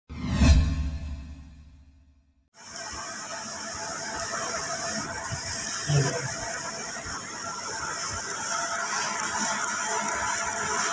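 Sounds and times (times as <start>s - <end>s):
machine hiss and hum: 2.6s - 10.9s.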